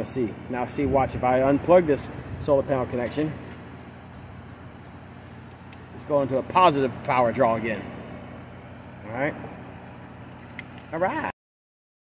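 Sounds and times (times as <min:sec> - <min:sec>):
low outdoor background hum: 0:00.0 - 0:11.3.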